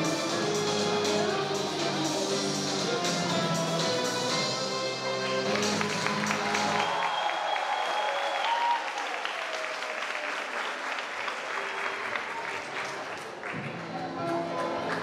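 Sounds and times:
music: 0.0 - 6.9, 13.4 - 15.0
audience applauding: 5.4 - 15.0.

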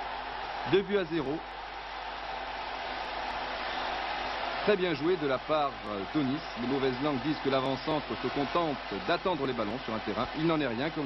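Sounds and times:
stadium crowd roar: 0.0 - 11.0.

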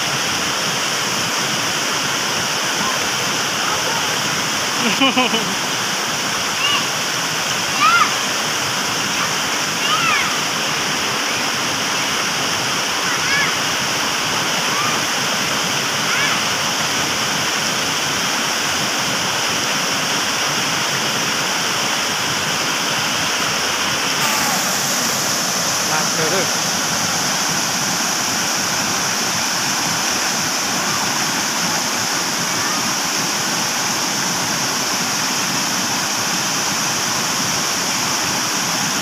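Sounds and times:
waterfall pouring into pool: 0.0 - 39.0
high-pitched rising and falling calls: 24.1 - 29.1.

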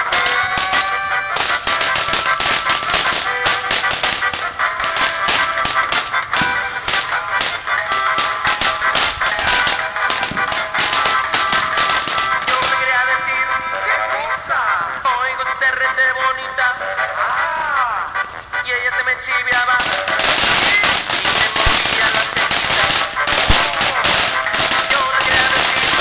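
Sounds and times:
firework crackling: 0.0 - 26.0
song playing: 0.0 - 26.0.

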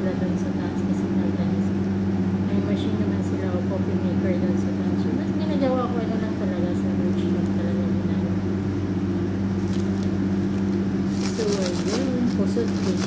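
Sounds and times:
low mechanical hum: 0.0 - 13.0
paper rustle: 9.6 - 13.0.

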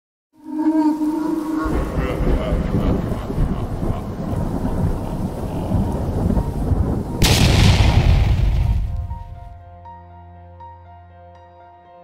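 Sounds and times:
loud explosion blast: 2.2 - 9.6.

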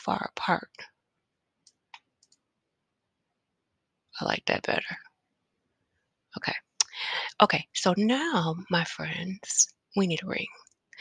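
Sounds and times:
computer mouse click: 1.6 - 2.4.

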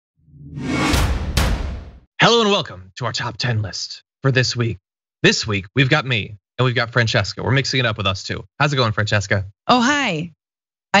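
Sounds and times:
low rumble: 0.3 - 2.0
whoosh sound effect: 0.3 - 2.0
sharp hits: 0.4 - 2.1.

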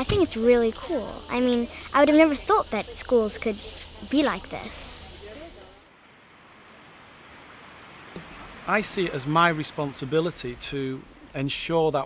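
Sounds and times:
faint distant voices: 0.0 - 5.9
high hiss and low hum: 0.0 - 12.0
outdoor hush: 0.0 - 12.0.

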